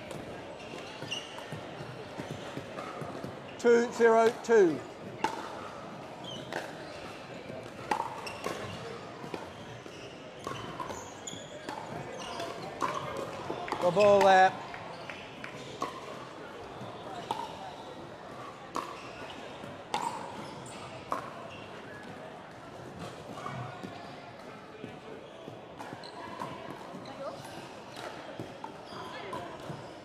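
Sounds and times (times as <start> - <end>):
voices echoing in a hall: 0.0 - 30.0.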